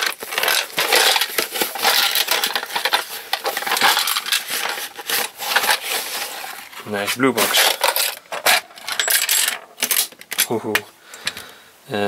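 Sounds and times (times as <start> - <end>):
plastic packaging crinkling and tearing: 0.0 - 8.9.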